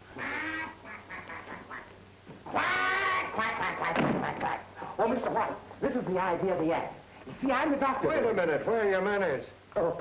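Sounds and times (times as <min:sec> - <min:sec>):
person quacking like a duck: 0:00.2 - 0:04.4.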